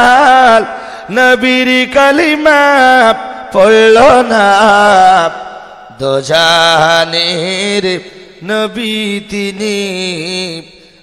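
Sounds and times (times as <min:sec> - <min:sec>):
man chanting: 0:00.0 - 0:11.0.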